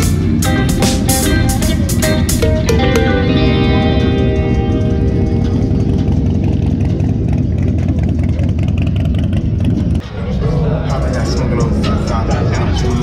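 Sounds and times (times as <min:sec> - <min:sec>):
guitar music: 0:00.0 - 0:08.8
motorcycle engines rumbling: 0:00.0 - 0:13.0.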